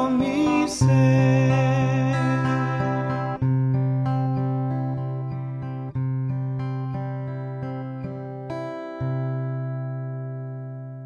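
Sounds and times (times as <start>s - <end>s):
guitar chord ringing: 0.0s - 11.0s.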